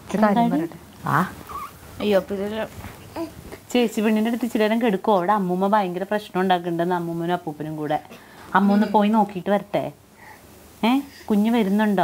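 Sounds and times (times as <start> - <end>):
woman speaking: 0.1 - 1.4, 2.0 - 2.8, 3.7 - 10.0, 10.8 - 12.0
squeaky swooping vocal sound: 1.5 - 1.8.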